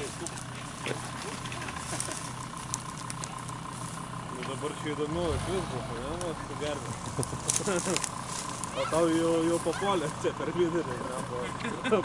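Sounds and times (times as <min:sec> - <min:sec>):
car engine idling: 0:00.0 - 0:12.0
voices: 0:00.0 - 0:12.0
people laughing: 0:01.2 - 0:02.4, 0:06.8 - 0:08.1, 0:11.2 - 0:12.0.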